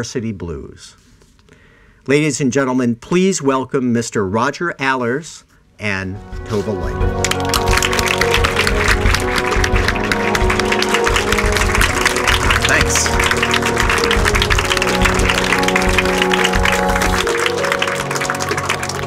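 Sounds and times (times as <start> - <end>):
background music with sustained notes: 6.1 - 19.0
audience applauding: 7.0 - 19.0.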